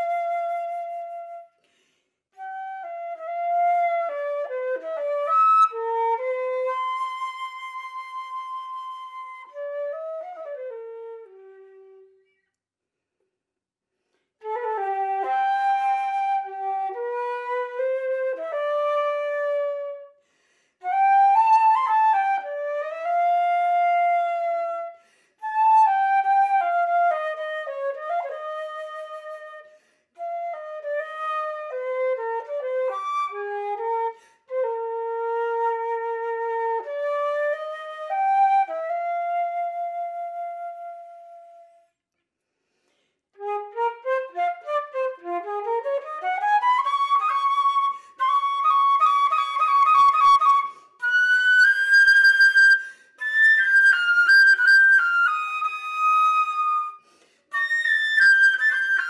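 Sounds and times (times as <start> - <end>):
solo flute melody: 0.0 - 12.5, 14.4 - 42.0, 43.3 - 59.0.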